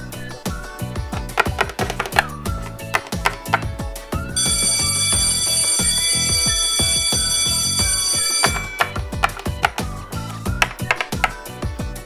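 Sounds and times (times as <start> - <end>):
background music with light beat: 0.0 - 12.0
electric school bell ringing: 4.4 - 9.2.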